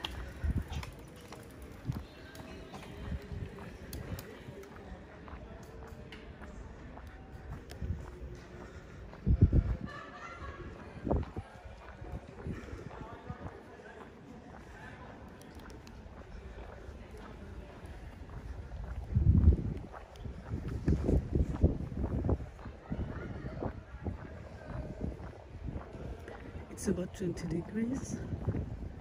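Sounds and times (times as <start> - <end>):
faint voices of passers-by: 0.0 - 29.0.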